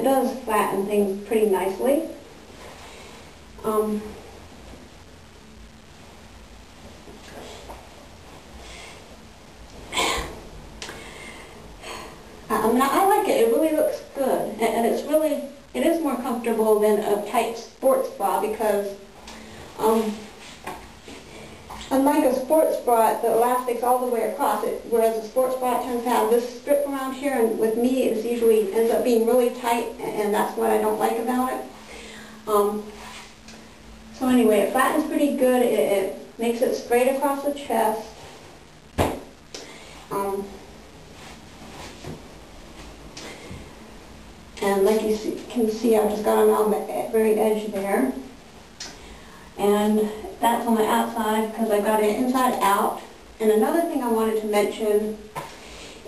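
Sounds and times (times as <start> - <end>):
person breathing: 8.6 - 9.2, 9.9 - 12.4, 31.8 - 32.5, 39.6 - 40.1, 49.0 - 49.6
sharp knock: 39.0 - 39.3.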